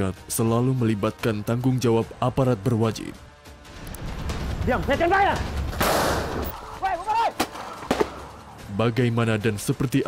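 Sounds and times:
sharp crack: 5.4s - 6.4s, 7.3s - 8.3s.

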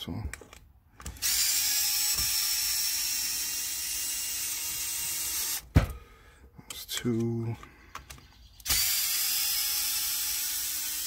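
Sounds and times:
electric screwdriver running: 1.1s - 5.6s, 8.7s - 11.0s.

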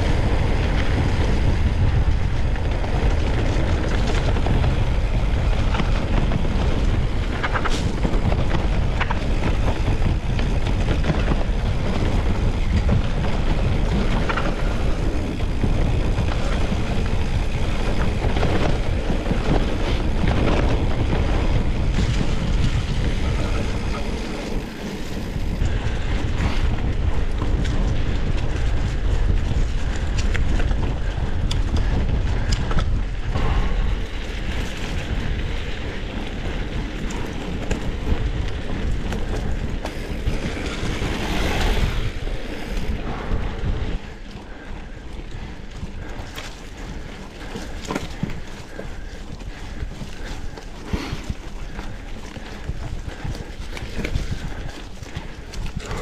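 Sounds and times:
bike rattling over bumps: 0.0s - 56.0s
bike tyres rolling on dirt: 0.0s - 56.0s
wind buffeting microphone: 0.0s - 56.0s.

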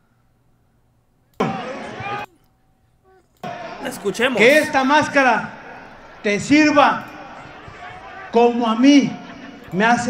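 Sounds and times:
man speaking: 3.8s - 5.5s.

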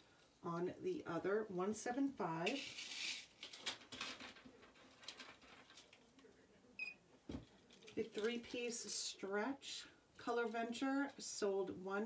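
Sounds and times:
beaded jewelry clicking and rustling: 2.4s - 6.0s.

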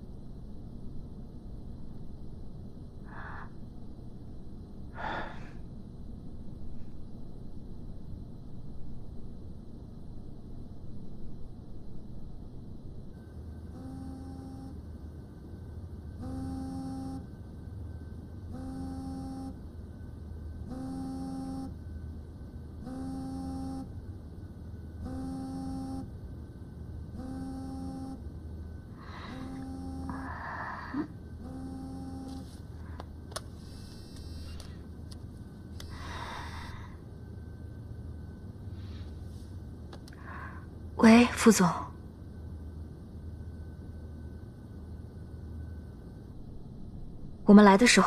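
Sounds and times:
mobile phone buzzing: 13.7s - 14.8s, 16.2s - 17.3s, 18.5s - 19.6s, 20.7s - 21.8s, 22.8s - 23.9s, 25.0s - 26.1s, 27.2s - 28.2s, 29.1s - 30.4s, 31.4s - 32.5s.

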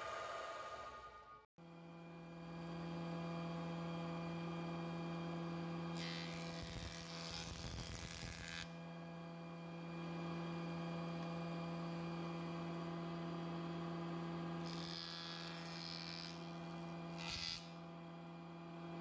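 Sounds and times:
hissing wood cut: 0.0s - 1.4s
wood jointer motor hum: 1.7s - 19.0s.

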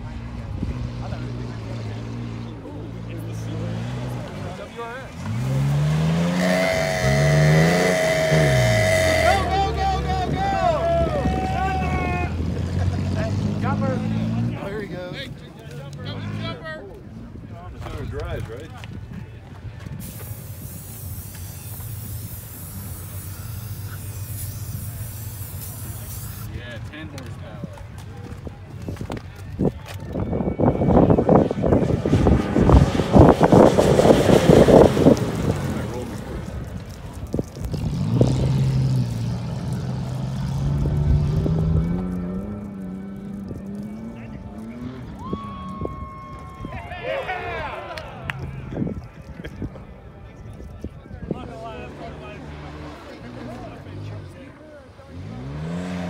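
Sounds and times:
car engine revving: 0.0s - 16.8s, 30.7s - 45.6s, 51.4s - 56.0s
tyres churning gravel: 3.5s - 16.6s, 19.8s - 47.8s, 50.0s - 56.0s
aerosol spray can hissing: 20.0s - 26.5s.

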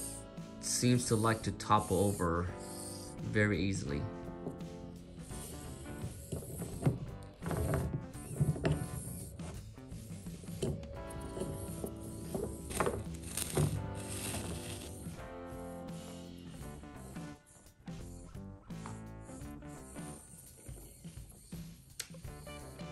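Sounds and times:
background music: 0.0s - 22.9s.

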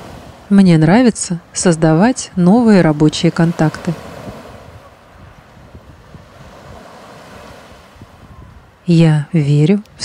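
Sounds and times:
waves washing on shore: 0.0s - 10.0s.

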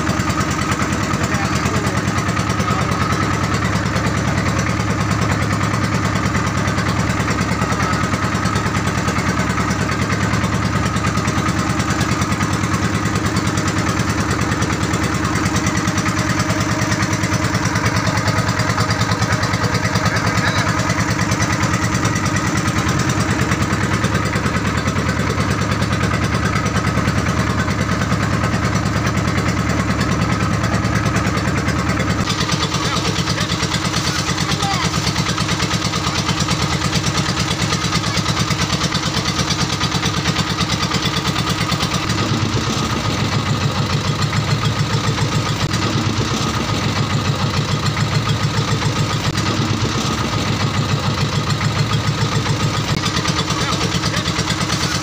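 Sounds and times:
engine running steadily: 0.0s - 55.0s.

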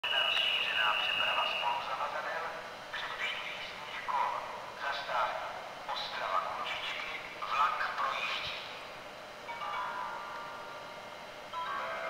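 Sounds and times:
steady high tone: 0.0s - 2.0s
public-address announcement: 0.0s - 12.0s.

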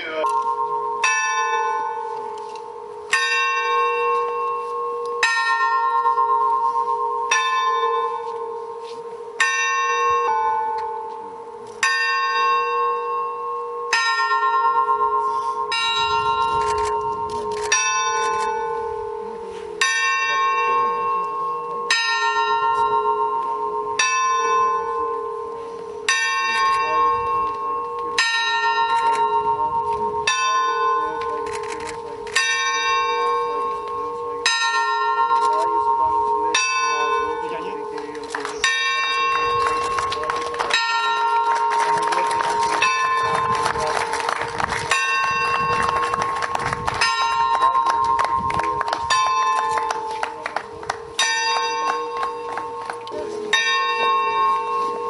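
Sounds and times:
church bell tolling: 0.0s - 55.0s.

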